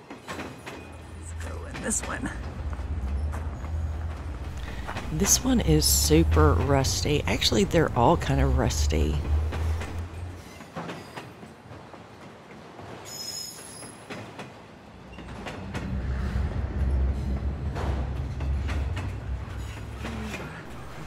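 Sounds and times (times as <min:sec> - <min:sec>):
train rumbling: 0:00.0 - 0:21.0.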